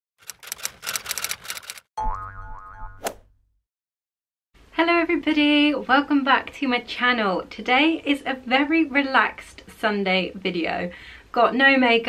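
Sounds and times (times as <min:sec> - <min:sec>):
typewriter-like clicks: 0:00.2 - 0:01.9
springy boing tone: 0:02.0 - 0:03.2.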